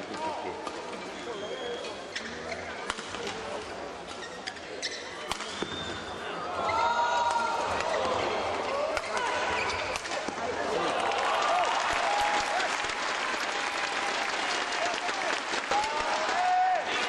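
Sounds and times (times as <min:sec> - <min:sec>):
crowd applause: 0:10.6 - 0:17.0.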